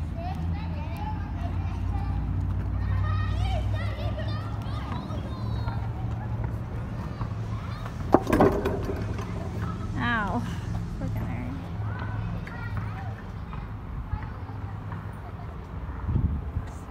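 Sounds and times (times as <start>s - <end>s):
children calling: 0.1s - 11.0s, 11.6s - 15.9s.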